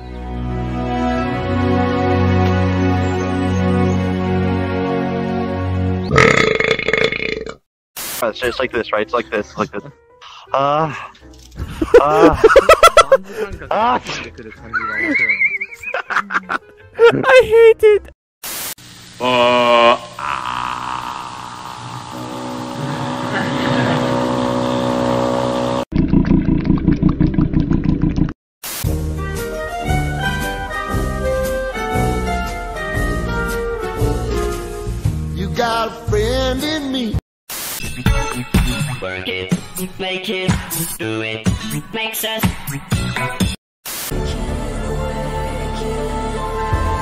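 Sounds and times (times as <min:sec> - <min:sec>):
loud long burp: 0:06.1 - 0:07.7, 0:19.2 - 0:26.3
man singing: 0:35.3 - 0:37.2, 0:39.0 - 0:42.8.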